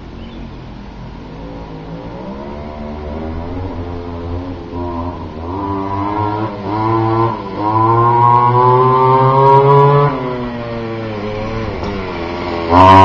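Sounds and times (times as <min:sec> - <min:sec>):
two-stroke scooter engine revving: 0:02.4 - 0:13.0.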